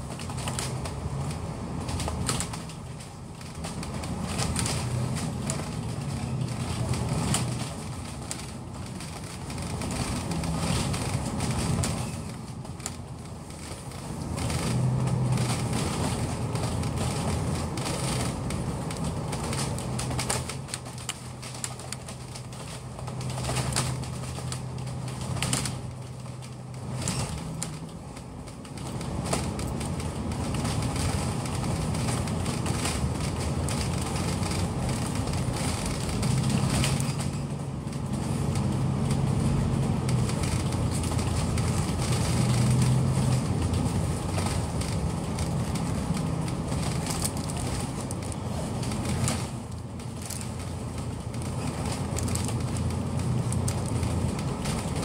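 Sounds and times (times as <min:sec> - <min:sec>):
bus engine hum: 0:00.0 - 0:55.0
light rattles and clicks: 0:00.0 - 0:55.0.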